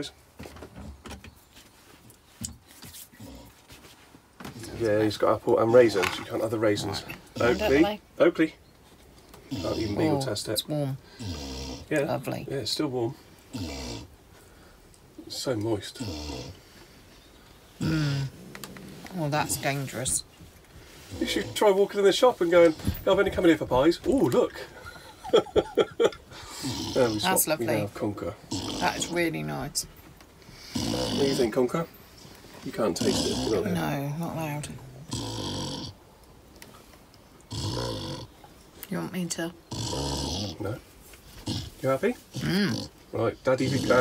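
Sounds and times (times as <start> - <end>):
dog grumbling: 5.7 - 8.0, 9.5 - 10.3, 11.1 - 12.0, 13.5 - 14.2, 15.9 - 16.6, 17.8 - 20.1, 26.4 - 29.4, 30.6 - 31.6, 32.7 - 34.0, 34.9 - 36.0, 37.5 - 38.4, 39.7 - 40.8, 41.4 - 44.0.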